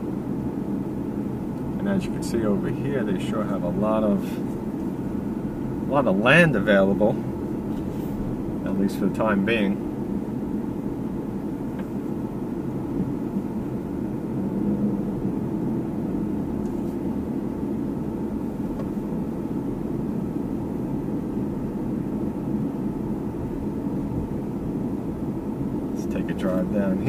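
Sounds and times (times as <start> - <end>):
car cabin engine and tyre hum: 0.0 - 27.0.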